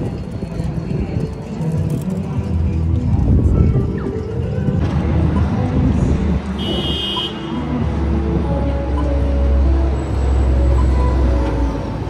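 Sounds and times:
background music: 0.0 - 12.0
passers-by talking: 0.0 - 12.0
road traffic rumble: 0.0 - 12.0.

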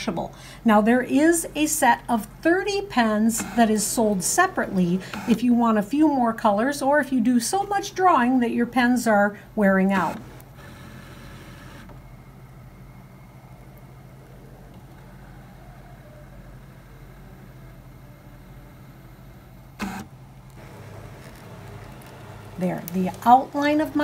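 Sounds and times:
cutting machine motors running: 3.4 - 5.4, 14.6 - 24.0.

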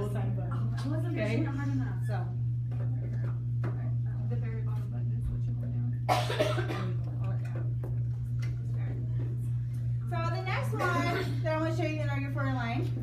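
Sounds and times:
steady low hum: 0.0 - 13.0
person coughing: 6.1 - 7.0, 10.8 - 11.4.

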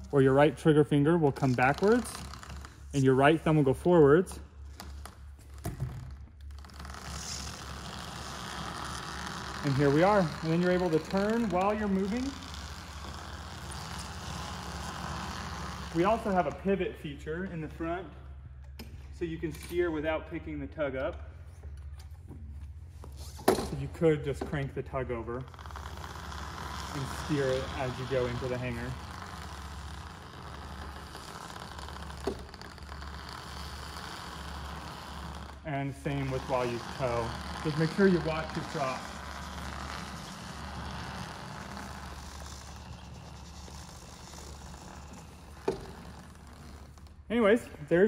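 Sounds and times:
electric aircraft tug humming: 0.0 - 19.2, 23.6 - 47.8.

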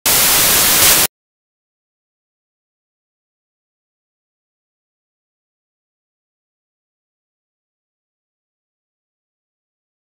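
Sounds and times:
hissing static: 0.0 - 1.1.

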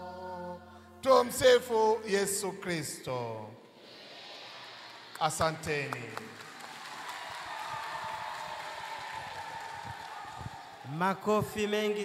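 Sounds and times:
audience applauding: 4.7 - 11.3.

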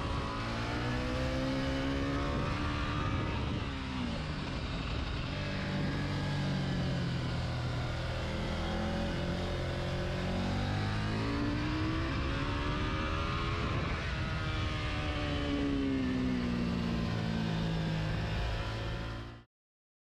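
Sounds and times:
motorcycle engine revving: 0.0 - 19.4.

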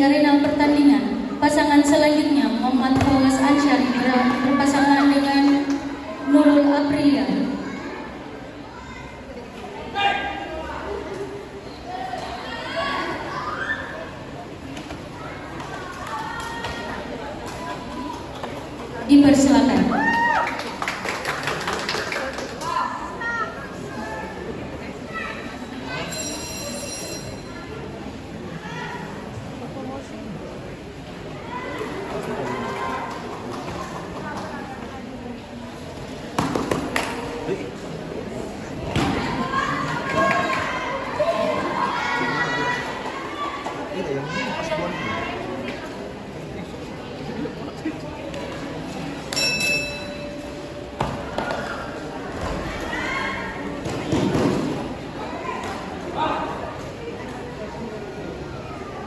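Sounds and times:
voices in echoing hall: 0.0 - 59.0.

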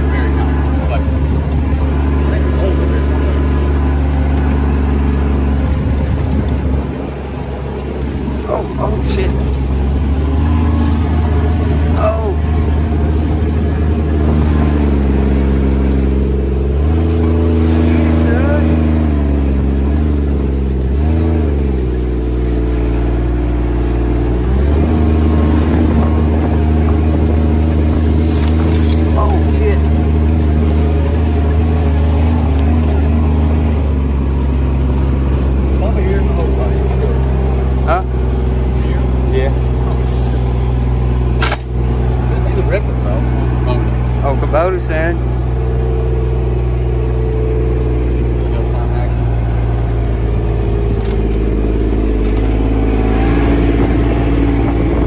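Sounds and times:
diesel engine running: 0.0 - 55.0.

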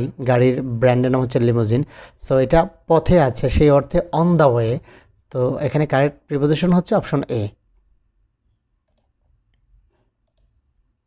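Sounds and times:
computer mouse clicks: 8.8 - 10.7.

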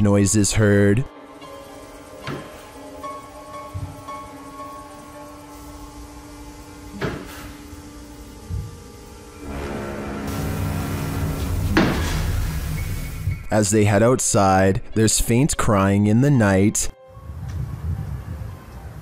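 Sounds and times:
eerie background music: 0.0 - 15.1, 16.9 - 19.0.

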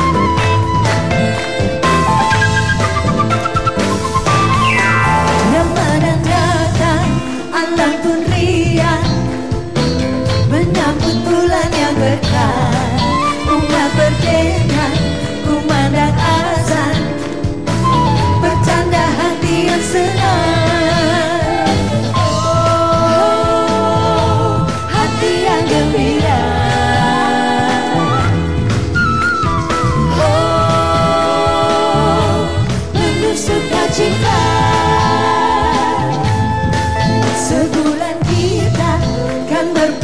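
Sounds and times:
instrumental backing: 0.0 - 40.0
pop band with steady beat: 0.0 - 40.0
woman singing with vibrato: 5.1 - 9.5, 10.4 - 17.3, 18.2 - 28.7, 29.8 - 40.0.

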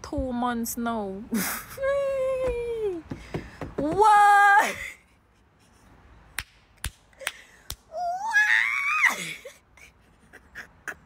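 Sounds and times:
woman shrieking: 7.9 - 9.6.

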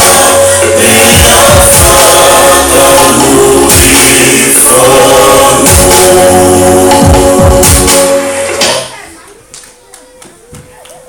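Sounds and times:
group singing in harmony: 0.0 - 8.9.

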